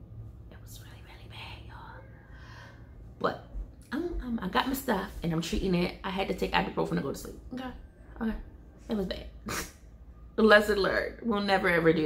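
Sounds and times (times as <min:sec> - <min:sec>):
low steady hum: 0:00.0 - 0:12.0
woman breathing softly: 0:02.0 - 0:03.0.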